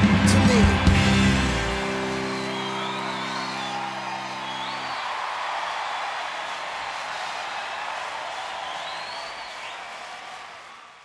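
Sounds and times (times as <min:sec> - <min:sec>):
karaoke backing track chord: 0:00.0 - 0:04.6
group cheering and whooping: 0:00.0 - 0:11.0.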